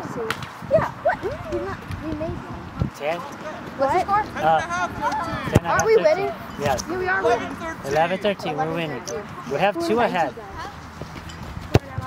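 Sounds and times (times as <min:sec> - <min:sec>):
players calling and chattering: 0:00.0 - 0:12.0
soccer balls kicked thuds: 0:05.2 - 0:05.9, 0:11.0 - 0:12.0.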